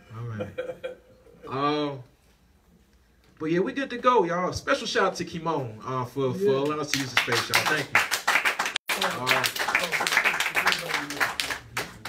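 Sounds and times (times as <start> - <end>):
audience clapping: 6.6 - 12.0.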